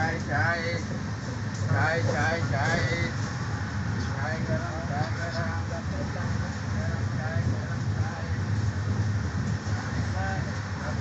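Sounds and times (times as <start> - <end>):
passengers talking: 0.0 - 11.0
train rumble inside coach: 0.0 - 11.0.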